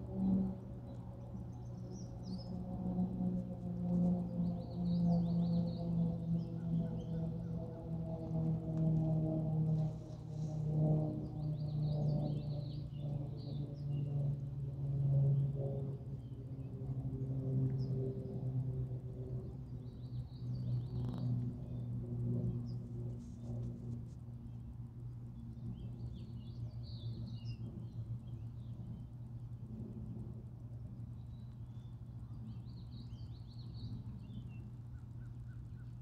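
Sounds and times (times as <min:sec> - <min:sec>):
low droning hum: 0:00.0 - 0:36.0
birds chirping: 0:04.0 - 0:14.5.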